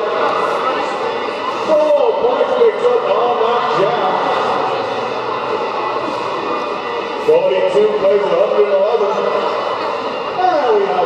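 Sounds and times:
crowd chatter in echoing hall: 0.0 - 11.0.

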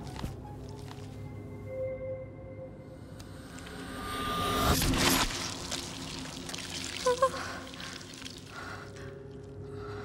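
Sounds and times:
liquid pouring: 5.3 - 8.5.

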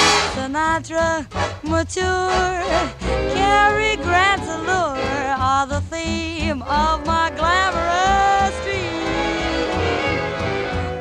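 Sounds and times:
swing jazz band playing: 0.0 - 11.0.

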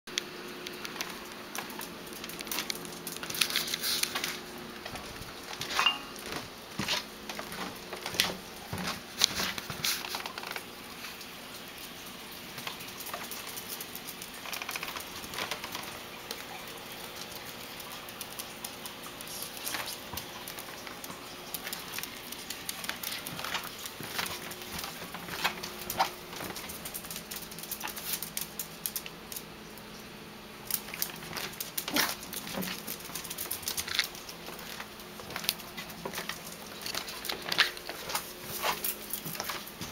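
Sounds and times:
animal claws clicking on hard floor: 0.5 - 29.9, 30.6 - 39.9.

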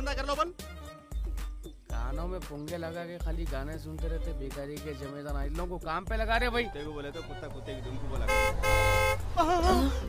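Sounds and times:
vehicle horn honking: 8.0 - 9.4.

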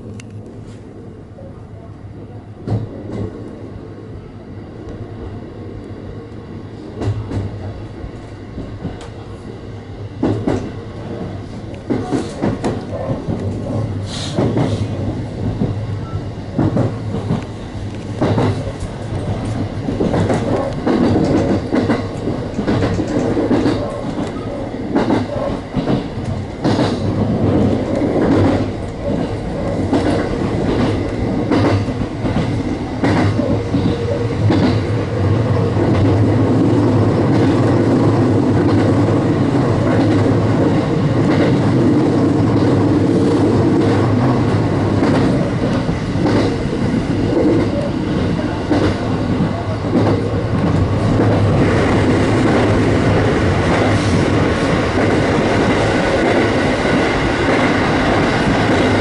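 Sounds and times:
train running hum: 0.0 - 59.0
train wheels clacking over rails: 2.6 - 3.6, 6.9 - 9.3, 10.1 - 59.0.

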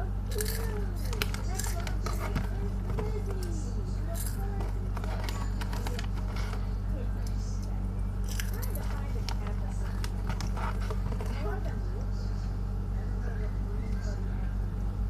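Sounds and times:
low electrical hum: 0.0 - 15.0
crunching crisp snack: 0.3 - 2.9, 4.1 - 6.7, 8.1 - 11.4
plastic bag crinkling: 0.3 - 6.8, 8.2 - 11.7.

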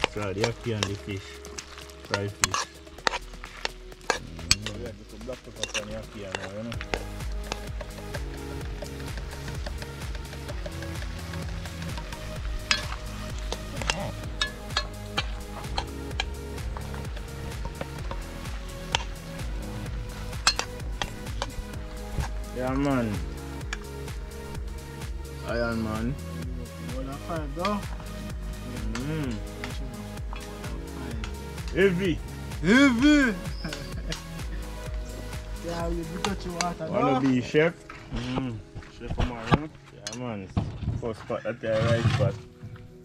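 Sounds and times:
food sizzling: 0.0 - 26.0
electronic music with steady beat: 0.0 - 37.2.

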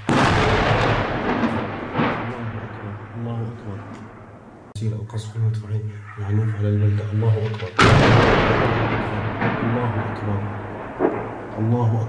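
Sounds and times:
artillery boom: 0.0 - 4.7, 7.8 - 11.9.

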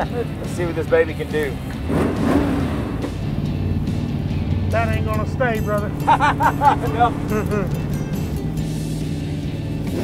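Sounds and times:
background music: 0.0 - 10.0
dune buggy engine running: 0.0 - 10.0.

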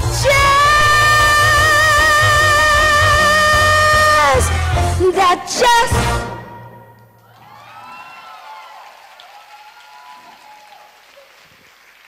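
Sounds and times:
audience cheering: 7.2 - 12.0
audience applause: 7.3 - 12.0.

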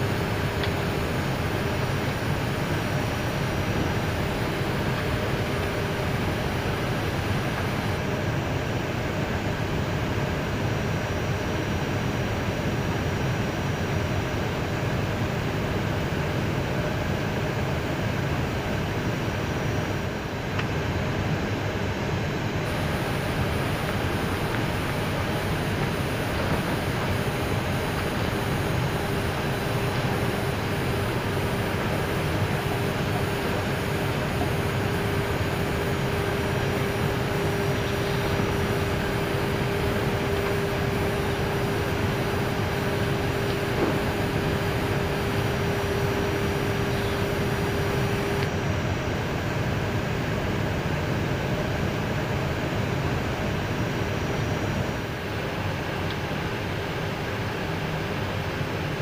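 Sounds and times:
air-conditioning airflow: 0.0 - 59.0
jet engines idling: 0.0 - 59.0.

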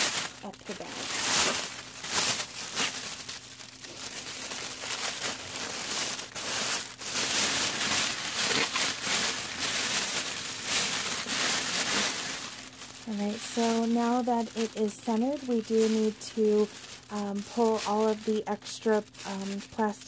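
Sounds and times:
plastic shrink-wrap crinkling: 0.0 - 20.0.

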